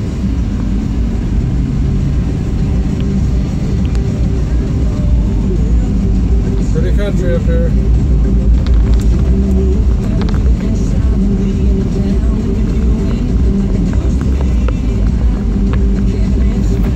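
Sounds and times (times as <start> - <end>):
music from car radio: 0.0 - 16.9
road and engine rumble: 0.0 - 16.9.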